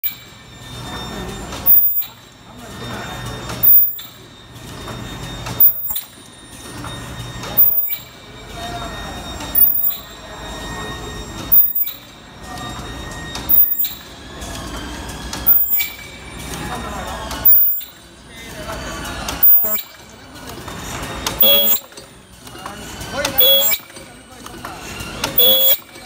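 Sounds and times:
continuous machine rattle: 0.0 - 26.0.

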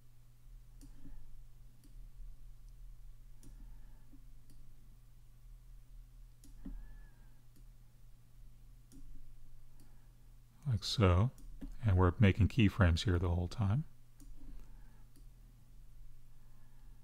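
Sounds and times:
low steady hum: 0.0 - 17.0
computer mouse clicks: 0.8 - 2.0, 3.4 - 4.6, 6.4 - 7.7, 8.9 - 10.0, 14.2 - 15.3.

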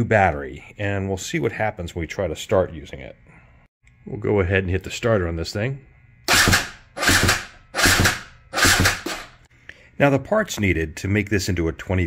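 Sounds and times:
electric starter cranking engine: 6.3 - 9.4.

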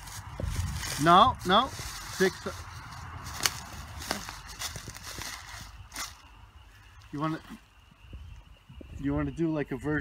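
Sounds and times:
footsteps on dry leaves: 0.0 - 7.8.

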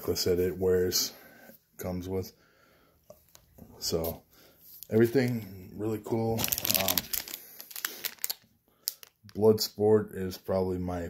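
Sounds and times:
plastic sleeve crinkling and clicking: 6.1 - 9.6.

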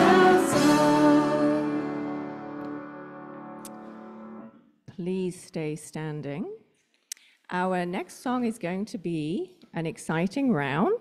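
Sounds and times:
band chord ringing out: 0.0 - 4.5.

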